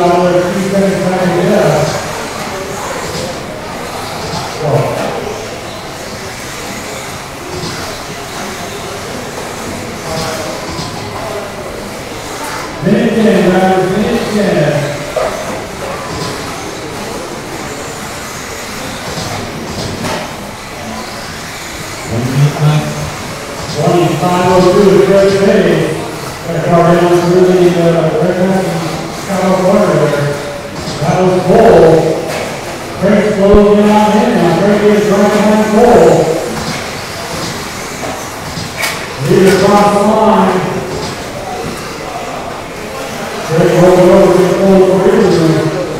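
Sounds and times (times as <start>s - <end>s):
announcer talking: 0.0s - 2.2s, 4.5s - 5.2s, 12.8s - 15.2s, 22.1s - 32.4s, 33.0s - 36.7s, 39.2s - 41.6s, 43.4s - 45.9s
rc cars racing: 0.0s - 45.9s.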